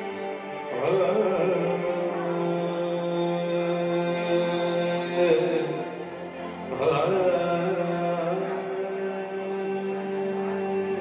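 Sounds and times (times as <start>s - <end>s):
man singing a long note: 0.6s - 11.0s.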